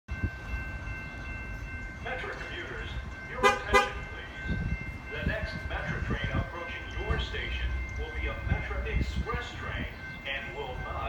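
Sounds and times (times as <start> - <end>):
distant train rumble: 0.1 - 11.0.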